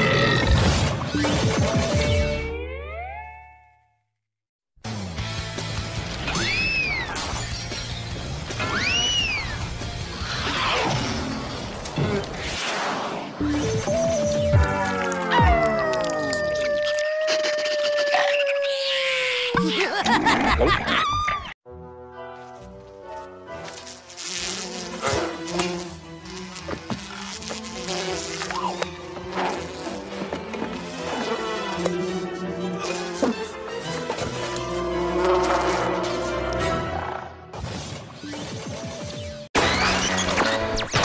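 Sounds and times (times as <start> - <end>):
background music: 21.7 - 37.5
cartoon fly buzzing: 23.6 - 36.8.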